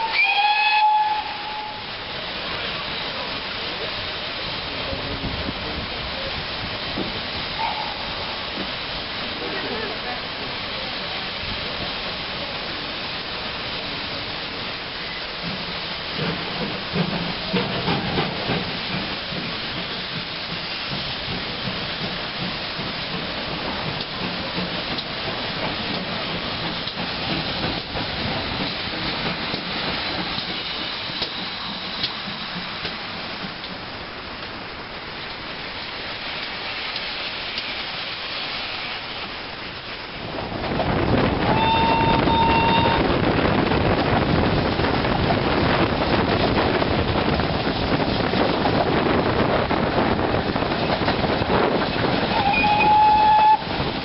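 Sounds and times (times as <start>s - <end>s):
steam whistle: 0.0s - 1.9s, 7.6s - 8.1s, 41.5s - 43.0s, 52.3s - 53.7s
rail noise: 0.0s - 54.0s
steam locomotive hissing: 0.0s - 54.0s
wind: 0.0s - 54.0s.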